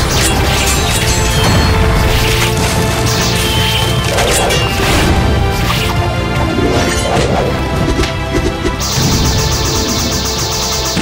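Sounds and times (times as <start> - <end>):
dramatic soundtrack music: 0.0 - 11.0.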